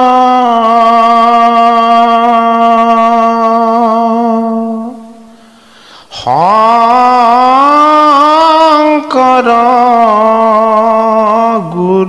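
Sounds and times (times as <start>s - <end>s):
man chanting: 0.0s - 5.3s, 6.1s - 12.0s.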